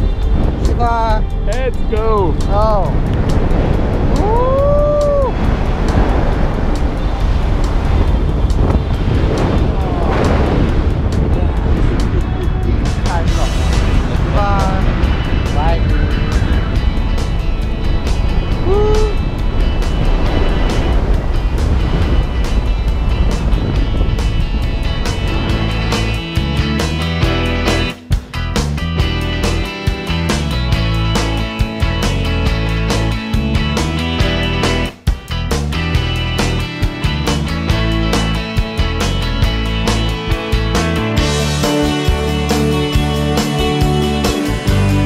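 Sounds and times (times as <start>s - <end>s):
background music: 0.0s - 45.0s
wind rushing on microphone: 0.0s - 45.0s
person whooping: 4.2s - 5.4s, 18.6s - 19.2s.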